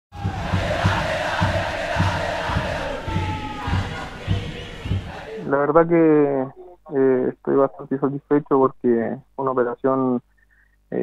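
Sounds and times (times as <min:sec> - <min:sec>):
crowd chanting and cheering: 0:00.1 - 0:05.5
steady low drum beat: 0:00.1 - 0:05.5.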